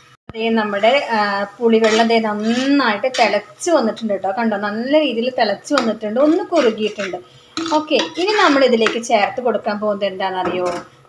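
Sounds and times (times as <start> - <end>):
woman talking: 0.3 - 10.9
metal spoon scraping a pot: 0.6 - 3.5, 5.7 - 9.4.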